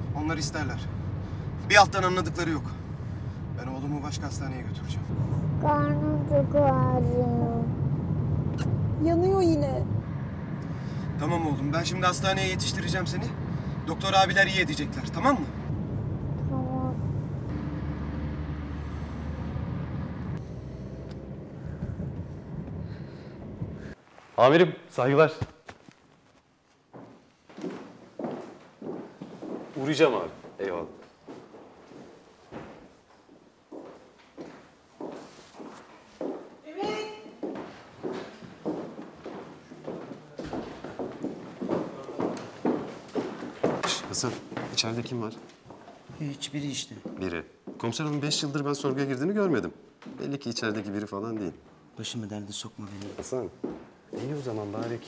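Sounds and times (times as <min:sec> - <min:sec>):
road noise: 0:00.0 - 0:24.1
car engine rumble inside cabin: 0:15.0 - 0:23.8
hard-soled footsteps on hard floor: 0:25.4 - 0:46.3, 0:47.0 - 0:48.2, 0:53.0 - 0:55.0.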